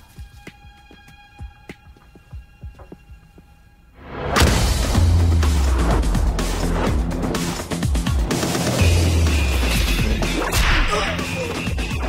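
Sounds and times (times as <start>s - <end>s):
dramatic film music: 0.1s - 12.0s.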